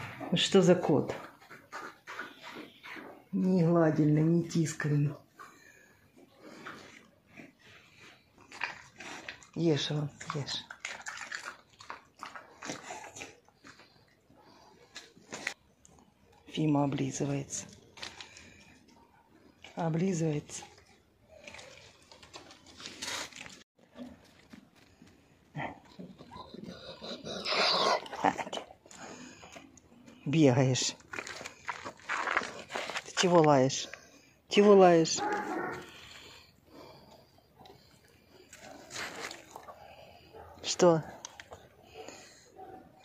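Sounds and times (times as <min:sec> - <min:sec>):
dog chewing: 0:08.4 - 0:14.2.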